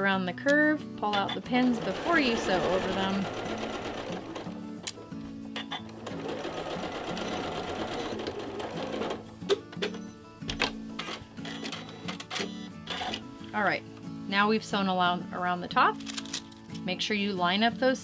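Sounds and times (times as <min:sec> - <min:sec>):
background music: 0:00.0 - 0:18.0
sewing machine stitching: 0:01.2 - 0:04.6, 0:05.8 - 0:09.2.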